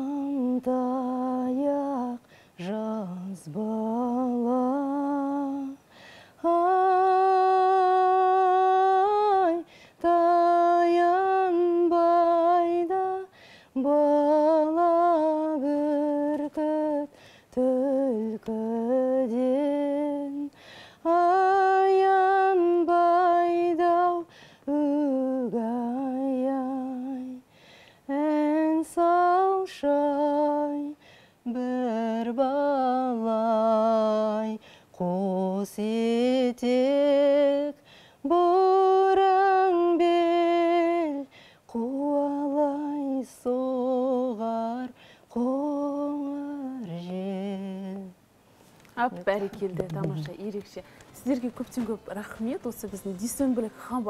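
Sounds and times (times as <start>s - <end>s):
woman singing unaccompanied: 0.0s - 48.3s, 49.0s - 54.0s
woman breathing: 5.8s - 6.4s, 9.7s - 10.0s, 13.3s - 13.8s, 17.1s - 17.5s, 20.5s - 21.0s, 24.3s - 24.7s, 27.5s - 28.1s, 31.0s - 31.4s, 34.6s - 34.9s, 37.8s - 38.2s, 41.3s - 41.7s, 44.9s - 45.3s.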